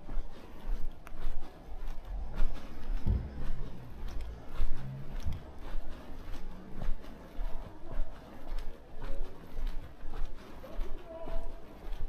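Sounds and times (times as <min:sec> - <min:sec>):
wind rumble on microphone: 0:00.0 - 0:08.2
footsteps on pavement: 0:00.0 - 0:12.0.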